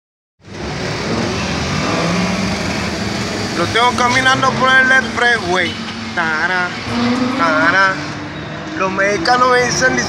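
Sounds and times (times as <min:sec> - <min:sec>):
road noise: 0:00.4 - 0:10.0
vehicle engine hum: 0:00.4 - 0:10.0.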